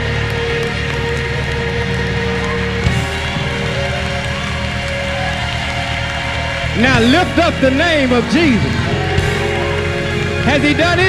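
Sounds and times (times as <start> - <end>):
congregation noise: 0.0 - 11.0
gospel band playing: 0.0 - 11.0.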